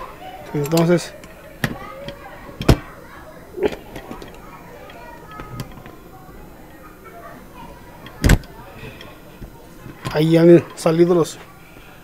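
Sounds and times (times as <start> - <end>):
metal lock parts clicking: 0.5 - 2.8.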